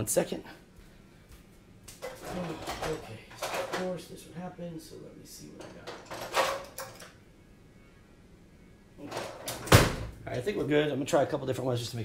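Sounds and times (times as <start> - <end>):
rummaging clatter: 2.0 - 4.0, 5.6 - 7.0.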